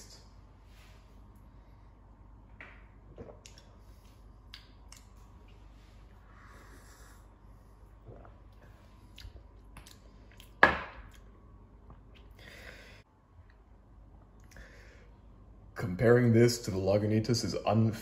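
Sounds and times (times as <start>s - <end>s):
man sipping and swallowing: 3.0s - 5.3s, 7.8s - 10.5s
wet mouth clicks: 4.4s - 5.2s.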